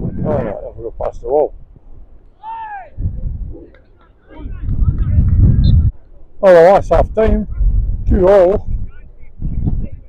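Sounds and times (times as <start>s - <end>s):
person shouting: 2.4s - 3.0s.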